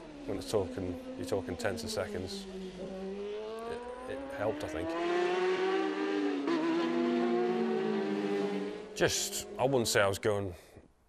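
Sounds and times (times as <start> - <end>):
motorcycle engine at high revs: 0.0 - 9.8.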